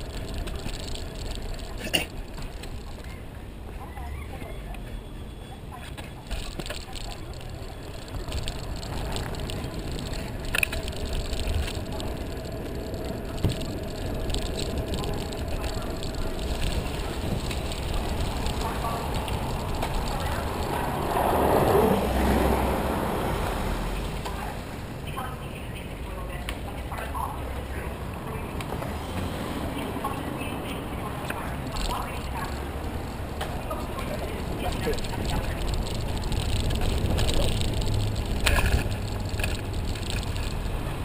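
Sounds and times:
bicycle rattles and clicks: 0:00.0 - 0:03.9, 0:05.7 - 0:23.4, 0:30.0 - 0:41.0
tyre and road noise: 0:00.0 - 0:41.0
wind rumbling on microphone: 0:00.0 - 0:41.0.

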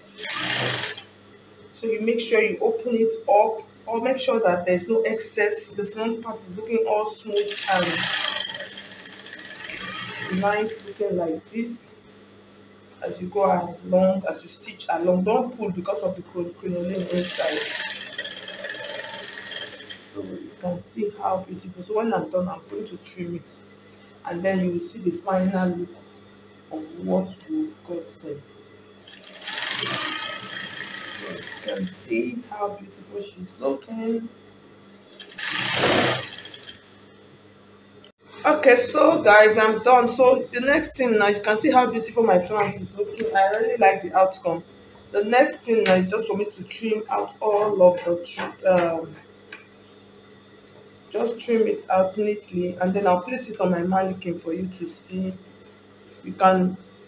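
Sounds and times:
sewing machine stitching fabric: 0:00.0 - 0:01.1, 0:07.3 - 0:11.1, 0:16.8 - 0:20.4, 0:29.1 - 0:32.0, 0:35.1 - 0:36.9
faint steady hum: 0:00.0 - 0:57.0.

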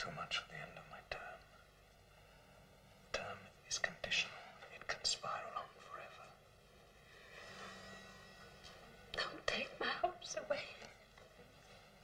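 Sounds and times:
man whispering: 0:00.0 - 0:01.6, 0:03.1 - 0:06.5.

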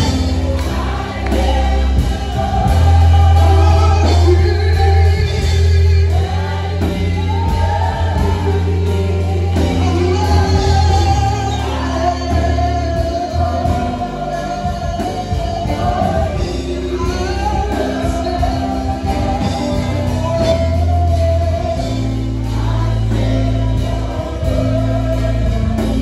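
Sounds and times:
backing singers: 0:00.0 - 0:26.0
guitars: 0:00.0 - 0:26.0
sustained low bass: 0:00.0 - 0:26.0
man singing into microphone: 0:01.0 - 0:26.0.

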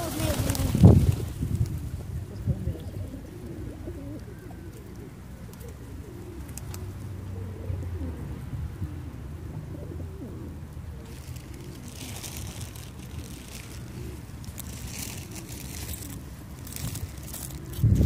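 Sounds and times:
pigeons cooing: 0:00.0 - 0:18.0.

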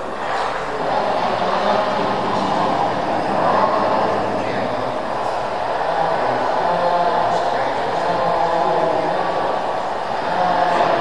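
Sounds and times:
loud rushing noise over loudspeakers: 0:00.0 - 0:11.0.

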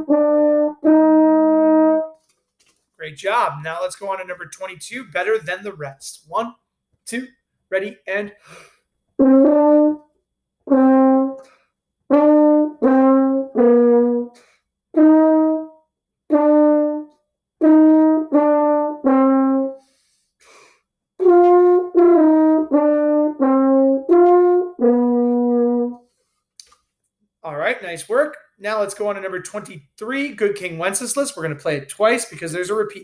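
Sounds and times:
french horn melody: 0:00.0 - 0:02.2, 0:09.2 - 0:19.9, 0:21.2 - 0:26.1.

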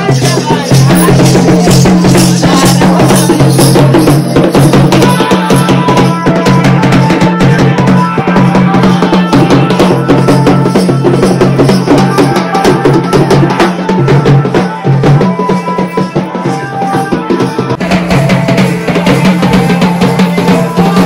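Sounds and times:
steady drumming: 0:00.0 - 0:21.0.

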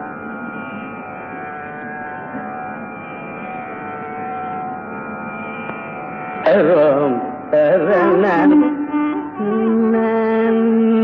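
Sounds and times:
tambura drone: 0:00.0 - 0:11.0.

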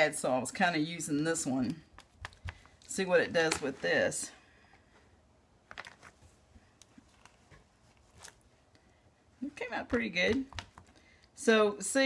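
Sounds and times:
faint clicks and taps: 0:01.6 - 0:02.9, 0:09.8 - 0:11.4.

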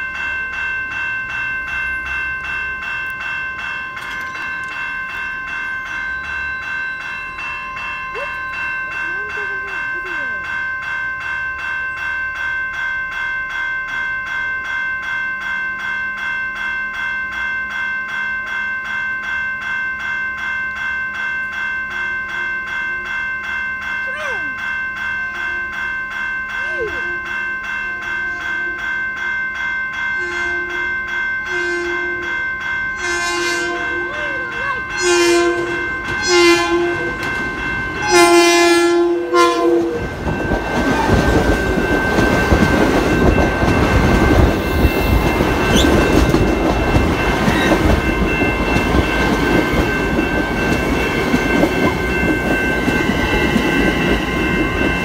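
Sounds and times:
crossing warning bell ringing: 0:00.0 - 0:55.0
train horn blasts: 0:30.2 - 0:30.9, 0:31.5 - 0:32.2, 0:33.0 - 0:34.1, 0:34.8 - 0:37.2, 0:38.0 - 0:40.1.

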